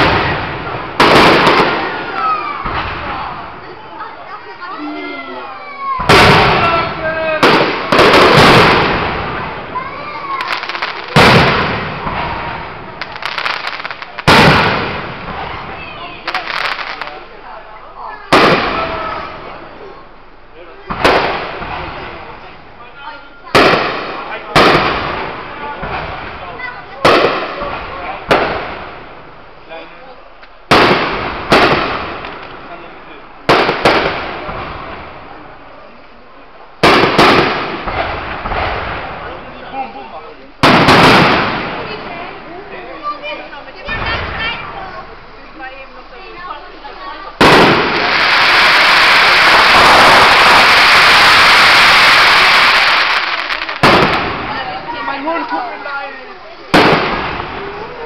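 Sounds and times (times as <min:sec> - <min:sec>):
fireworks bursting with bangs: 0:00.0 - 0:17.6, 0:18.2 - 0:22.8, 0:23.4 - 0:29.7, 0:30.4 - 0:58.0.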